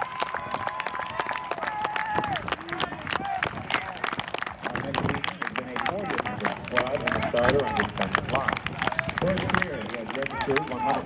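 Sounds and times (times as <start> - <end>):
crowd clapping: 0.0 - 11.0.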